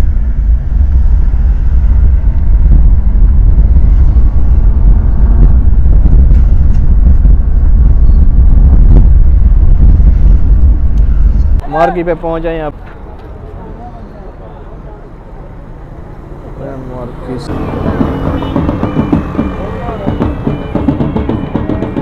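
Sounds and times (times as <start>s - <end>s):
road and engine rumble in car: 0.0s - 11.7s, 12.6s - 22.0s.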